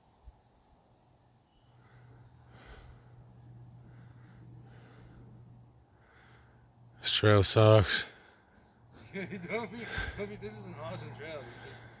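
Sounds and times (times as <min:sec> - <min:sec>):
man talking softly: 0:07.0 - 0:08.2, 0:09.1 - 0:12.0.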